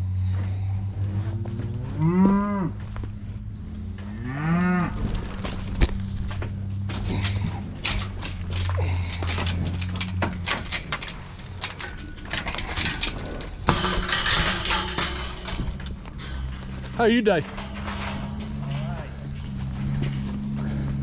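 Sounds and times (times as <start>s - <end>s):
low hum: 0.0s - 21.0s
cow mooing: 4.0s - 5.2s
sharp knocks and clatters: 5.4s - 21.0s.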